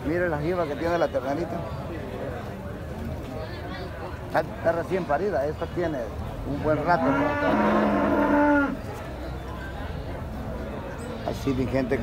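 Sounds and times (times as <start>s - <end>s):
cow mooing: 7.0s - 8.8s.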